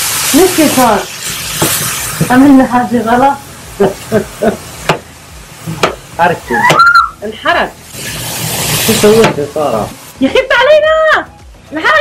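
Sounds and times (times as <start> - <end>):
chicken sizzling in a frying pan: 0.0 - 11.1.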